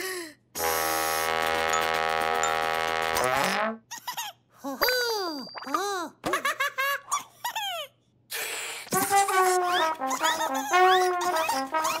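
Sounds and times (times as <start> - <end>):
brass horn blast: 0.6 - 3.8, 8.9 - 12.0.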